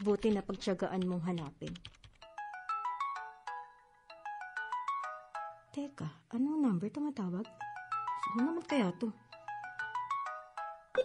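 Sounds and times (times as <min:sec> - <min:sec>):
phone ringtone beeping melody: 0:02.2 - 0:05.7, 0:07.5 - 0:11.0.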